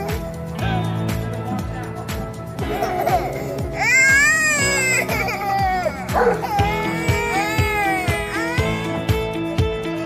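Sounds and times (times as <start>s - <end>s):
background music with steady beat: 0.0s - 10.0s
baby crying: 2.6s - 10.0s.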